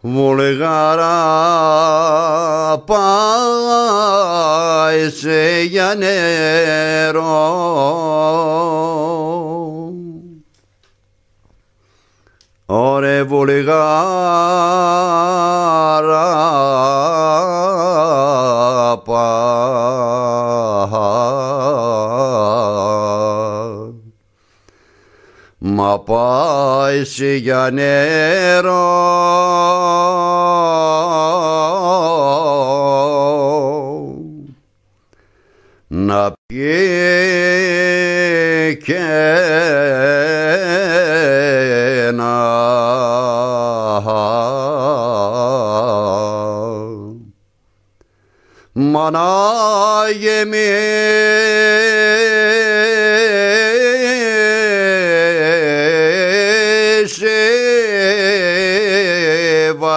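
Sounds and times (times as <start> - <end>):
man singing folk song: 0.0 - 10.4, 12.7 - 24.1, 25.6 - 34.6, 35.9 - 47.3, 48.8 - 59.9.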